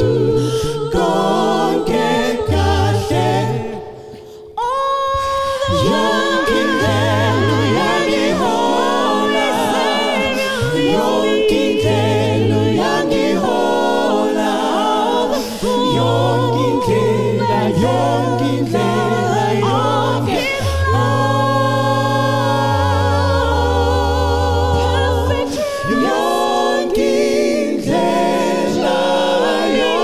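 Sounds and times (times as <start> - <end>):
gospel group singing a cappella: 0.0 - 30.0.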